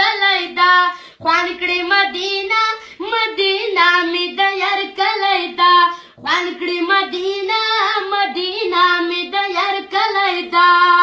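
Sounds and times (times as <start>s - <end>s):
child singing devotional song: 0.0s - 11.0s.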